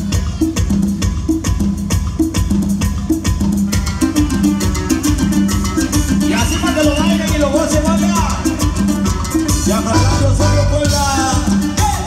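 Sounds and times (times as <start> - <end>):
live dance band playing: 0.0 - 12.0.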